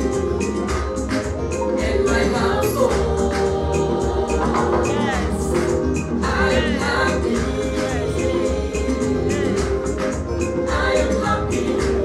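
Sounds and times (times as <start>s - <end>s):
backing track with bass beat: 0.0s - 12.0s
woman singing gospel song: 1.6s - 12.0s.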